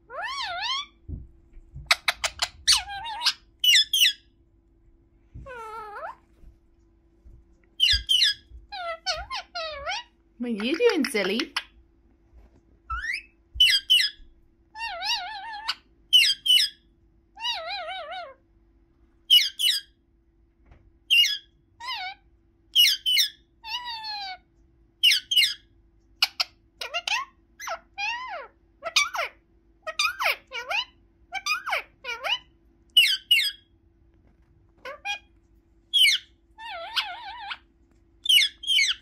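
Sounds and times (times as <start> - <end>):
parakeet squawking and chattering: 0.0 - 1.0, 1.8 - 4.3, 5.4 - 6.2, 7.8 - 11.8, 12.9 - 18.4, 19.2 - 20.0, 21.0 - 33.8, 34.7 - 39.0.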